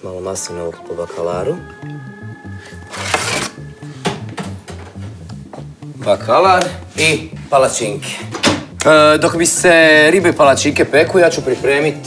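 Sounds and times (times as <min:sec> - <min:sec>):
background music with bass beat: 0:00.6 - 0:12.0.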